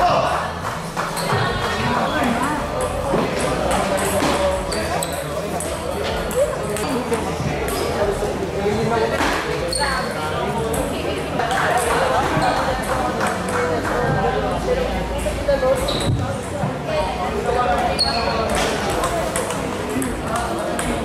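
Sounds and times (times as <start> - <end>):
people talking: 1.2 - 21.0.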